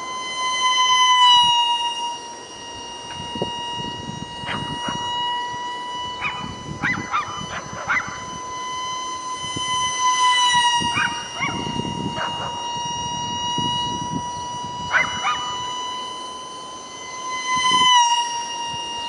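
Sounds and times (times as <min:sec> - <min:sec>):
electric ducted fan whine: 0:00.0 - 0:19.0.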